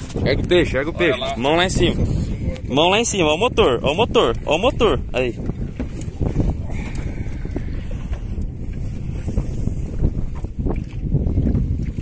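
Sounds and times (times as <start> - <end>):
wind rumbling on microphone: 0.0 - 12.0
water slapping against metal hull: 3.6 - 12.0.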